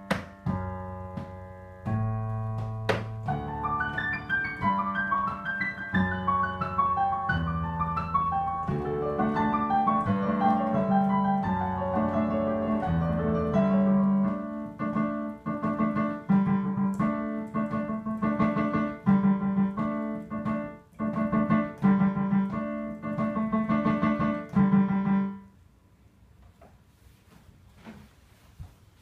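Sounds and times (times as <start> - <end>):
solo piano playing: 0.0 - 25.6.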